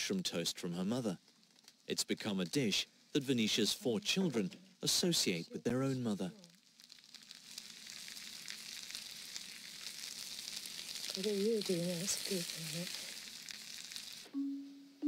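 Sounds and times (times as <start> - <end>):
mushrooms sizzling in a pan: 0.0 - 15.0
chopsticks stirring in a pan: 6.2 - 14.3.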